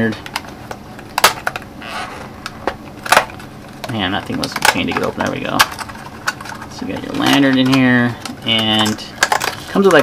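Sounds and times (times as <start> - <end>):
cardboard scraping rustle: 1.8 - 2.4.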